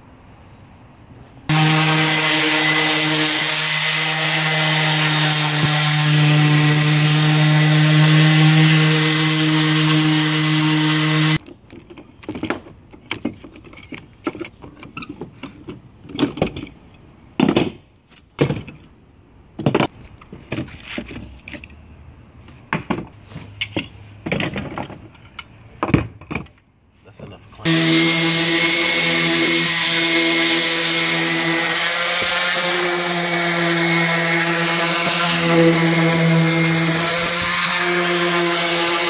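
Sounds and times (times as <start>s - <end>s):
orbital sander running: 1.5s - 11.4s, 27.6s - 39.0s.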